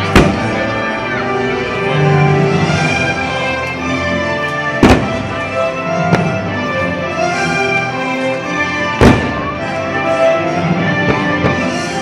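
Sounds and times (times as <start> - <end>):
music playing: 0.0 - 12.0.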